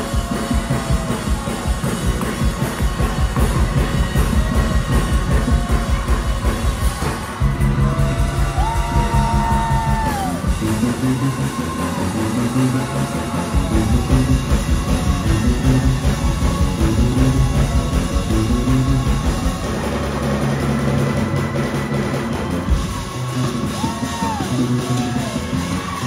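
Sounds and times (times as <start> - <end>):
bass guitar line: 0.0 - 26.0
keyboard with sliding notes: 0.0 - 26.0
rapid drum kit: 0.0 - 26.0.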